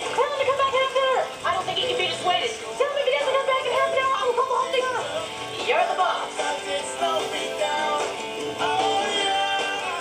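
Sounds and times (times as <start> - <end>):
trailer music from tv speaker: 0.0 - 10.0.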